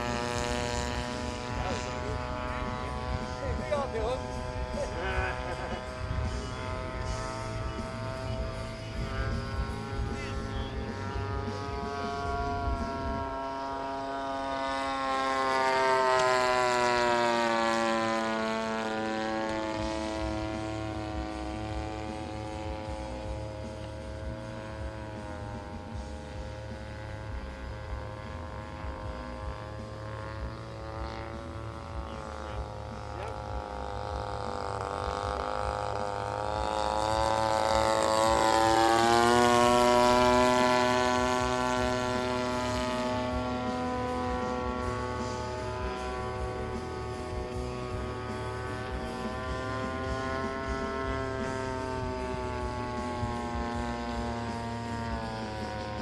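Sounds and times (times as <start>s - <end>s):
model airplane engine running: 0.0s - 56.0s.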